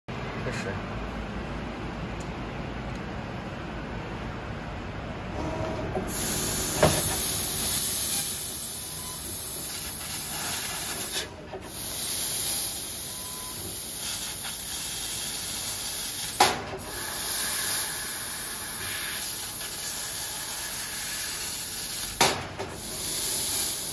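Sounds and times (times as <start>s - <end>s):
high hiss of assist gas: 6.1s - 23.9s.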